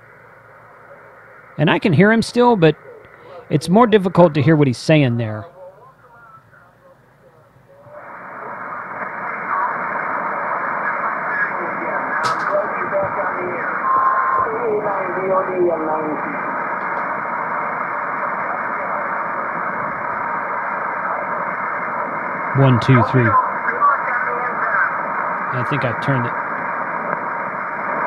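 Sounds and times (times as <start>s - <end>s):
radio static: 0.0s - 28.0s
faint radio voice: 5.5s - 16.5s, 22.6s - 26.4s
steady radio whistle: 7.3s - 28.0s.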